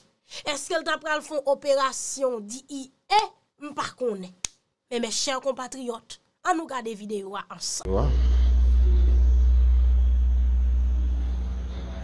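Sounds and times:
steady low rumble: 0:07.9 - 0:12.0.

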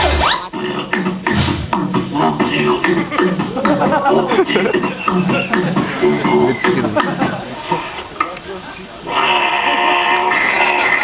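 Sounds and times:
beatboxing over loudspeakers: 0:00.0 - 0:11.0.

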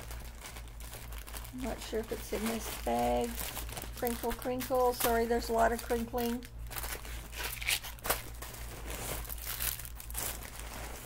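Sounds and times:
bag crinkling and rustling: 0:00.0 - 0:11.0.

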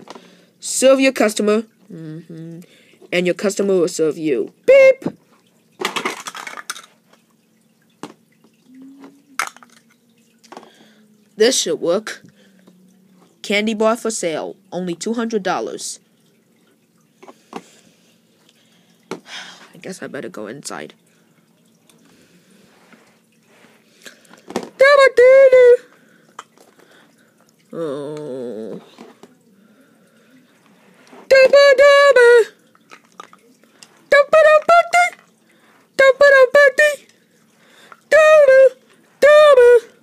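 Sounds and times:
plastic toy blocks clattering: 0:05.8 - 0:07.0, 0:09.4 - 0:09.9
cartoon-style high-pitched yell: 0:34.2 - 0:35.2, 0:36.0 - 0:37.1, 0:38.1 - 0:40.0.

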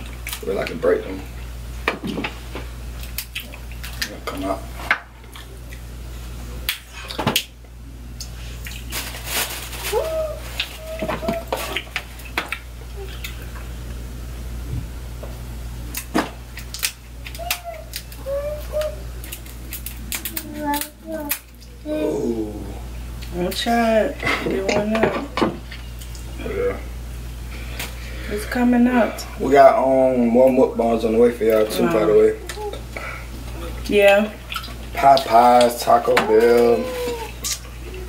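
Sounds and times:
crab shells cracking: 0:03.0 - 0:04.2, 0:15.9 - 0:21.7.

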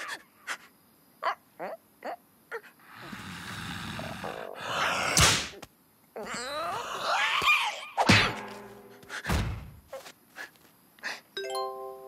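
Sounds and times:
thuds: 0:08.0 - 0:09.9.

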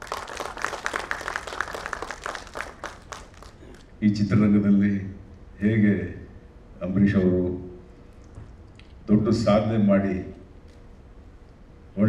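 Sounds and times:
audience applause: 0:00.0 - 0:03.9.

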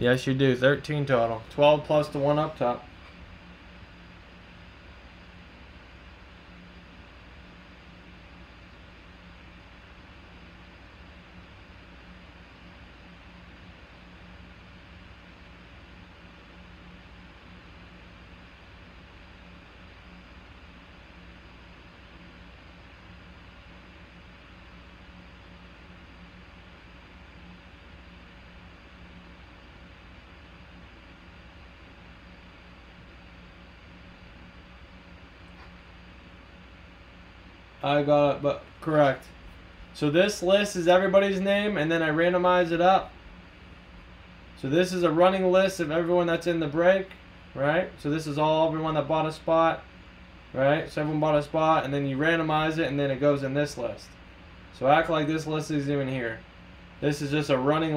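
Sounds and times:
constant low hum: 0:00.0 - 0:57.9.

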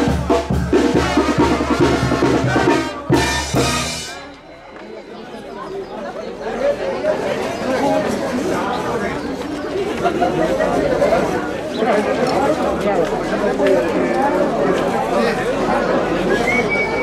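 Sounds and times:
brass band playing: 0:00.0 - 0:04.4
crowd chatter: 0:00.0 - 0:17.0.

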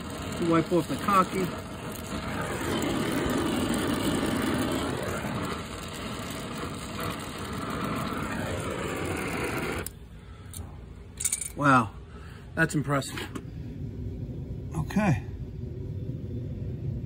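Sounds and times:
torch burning with rushing noise: 0:00.0 - 0:10.8, 0:12.6 - 0:17.0.

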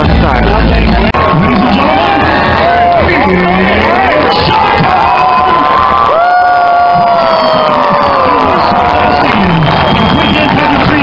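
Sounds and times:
stadium crowd cheering: 0:00.6 - 0:11.0.

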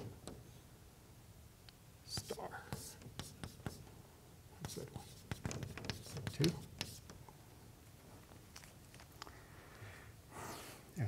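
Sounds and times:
chalk writing on blackboard: 0:02.1 - 0:03.9, 0:04.6 - 0:07.2.

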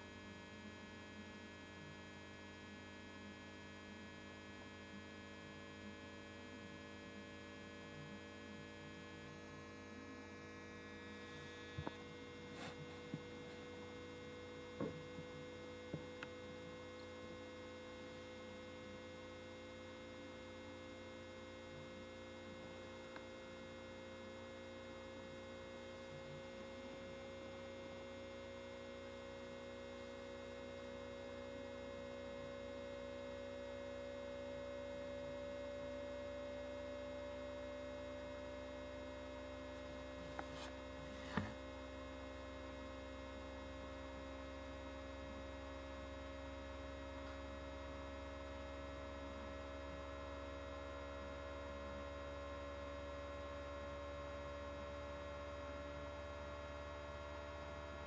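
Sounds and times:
electrical hum: 0:00.0 - 0:58.0.

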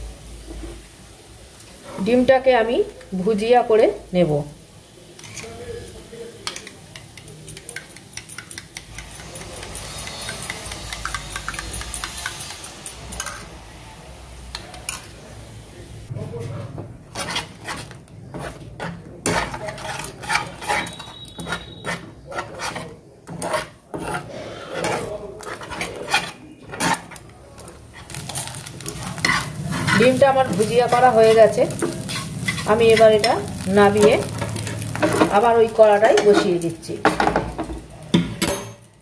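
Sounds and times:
spatula scraping frying pan: 0:05.2 - 0:05.6, 0:06.5 - 0:13.5, 0:17.1 - 0:37.7
spoon clicking against bowl: 0:06.5 - 0:13.4.

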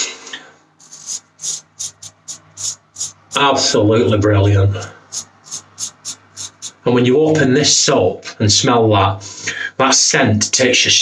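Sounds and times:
razor scraping stubble: 0:00.8 - 0:06.8.

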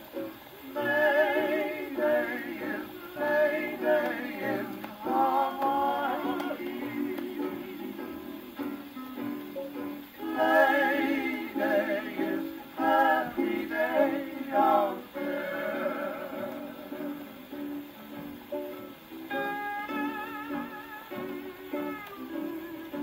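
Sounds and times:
string-band music on phonograph: 0:00.0 - 0:23.0.

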